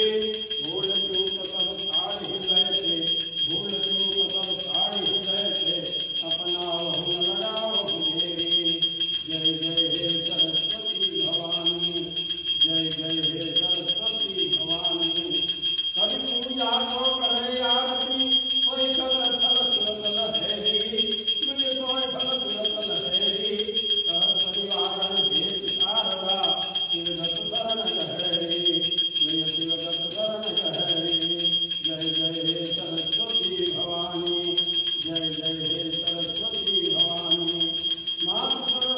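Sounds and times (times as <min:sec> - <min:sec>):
group singing devotional song: 0:00.0 - 0:38.9
hand bell ringing rapidly: 0:00.0 - 0:38.9.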